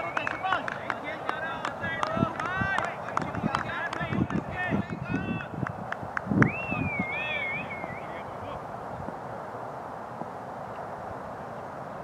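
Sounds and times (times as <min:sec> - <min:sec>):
voices calling out: 0:00.0 - 0:05.6, 0:06.5 - 0:08.8
high wavering whistle-like call: 0:06.4 - 0:08.2.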